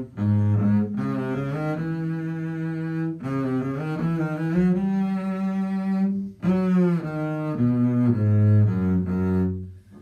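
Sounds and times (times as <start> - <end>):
bowed double bass: 0.0 - 10.0.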